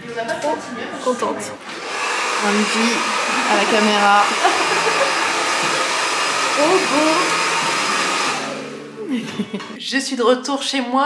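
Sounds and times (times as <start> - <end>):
hair dryer blowing: 1.6 - 9.0.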